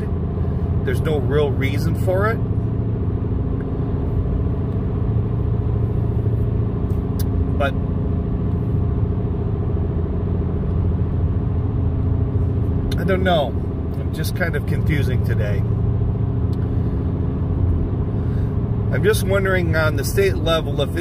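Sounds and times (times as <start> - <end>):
car engine hum: 0.0 - 21.0
tyre road rumble: 0.0 - 21.0.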